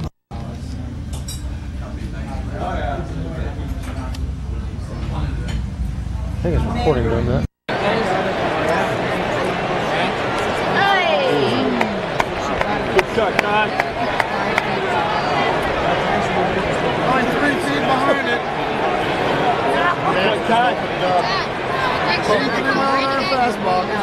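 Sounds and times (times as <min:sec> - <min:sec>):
crowd voices talking: 0:00.0 - 0:24.0.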